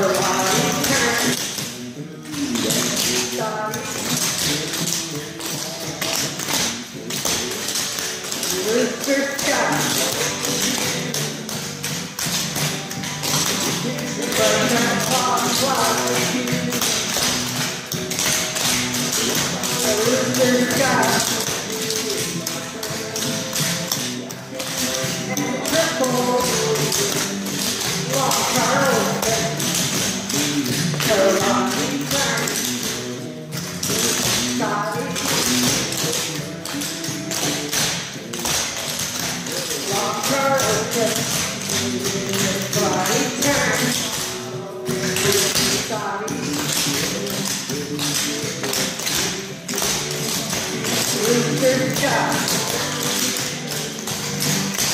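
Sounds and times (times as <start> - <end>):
music: 0.0 - 54.9
tap shoes clicking on board: 0.0 - 54.9.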